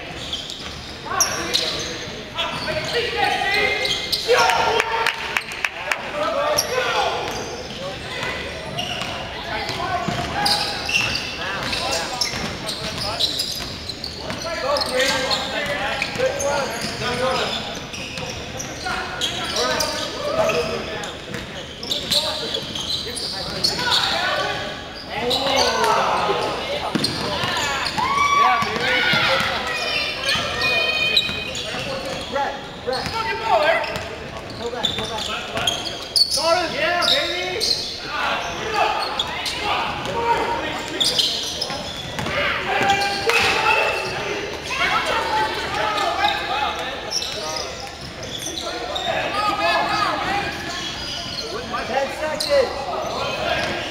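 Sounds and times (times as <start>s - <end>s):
players shouting: 23.2s - 31.4s, 36.4s - 41.6s, 42.2s - 47.2s.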